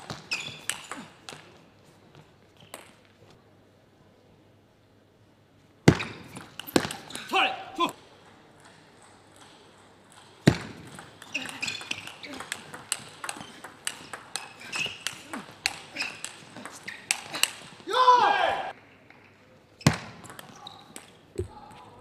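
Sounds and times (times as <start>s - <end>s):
table tennis ball clicks: 10.2s - 17.6s
person shouting: 17.9s - 18.7s.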